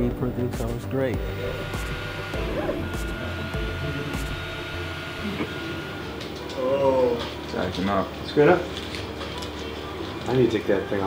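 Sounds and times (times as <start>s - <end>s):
steady fan hiss: 0.0s - 9.2s
thin high whine: 1.0s - 7.4s
stepper motors whirring: 1.2s - 9.6s.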